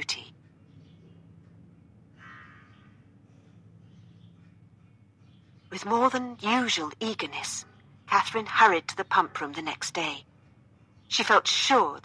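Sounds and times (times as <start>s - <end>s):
steady low hum: 0.0s - 11.9s.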